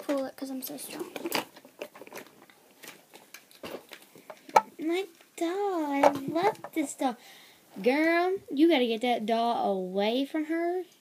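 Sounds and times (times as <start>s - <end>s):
plastic toy car clicks and scrapes: 0.9s - 4.0s.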